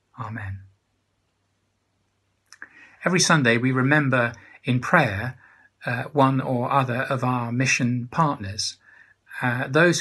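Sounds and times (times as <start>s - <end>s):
man's mouth click: 2.5s - 2.8s
quiet intake of breath: 2.6s - 3.1s, 4.3s - 4.7s, 5.4s - 5.8s, 8.8s - 9.4s.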